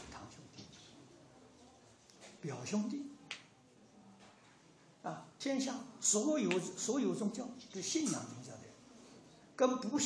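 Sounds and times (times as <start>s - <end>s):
speech: 9.6s - 10.0s.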